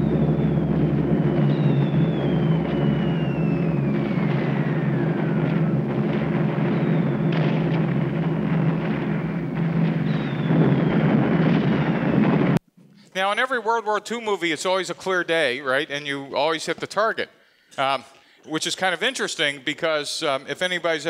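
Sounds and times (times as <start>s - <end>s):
whistles falling in pitch: 0.0s - 7.4s, 9.9s - 11.1s
bomber engines droning: 0.0s - 12.6s.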